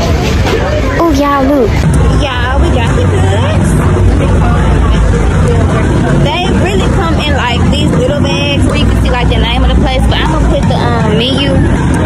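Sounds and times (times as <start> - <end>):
loud steady low rumble: 0.0 - 12.0
people talking: 0.0 - 12.0.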